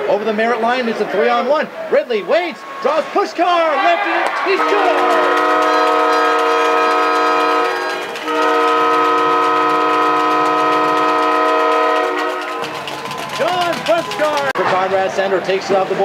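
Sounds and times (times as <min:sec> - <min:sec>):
arena goal horn blasts: 0:04.5 - 0:12.7.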